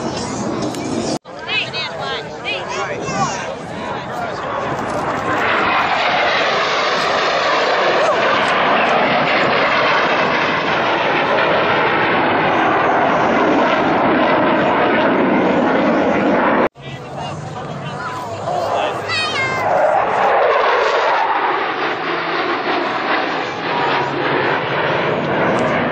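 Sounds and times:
jet flying past: 0.0 - 25.9.

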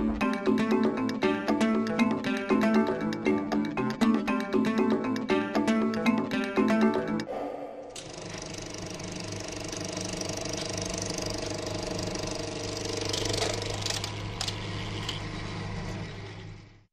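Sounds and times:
machine humming with rattle: 7.9 - 16.9.

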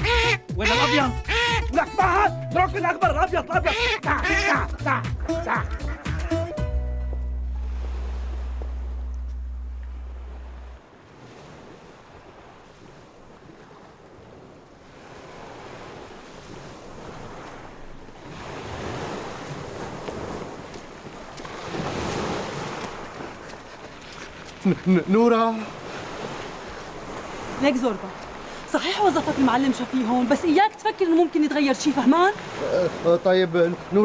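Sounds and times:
wind: 0.0 - 34.0
held low musical note: 4.6 - 10.8
sea waves washing on shore: 7.5 - 34.0.

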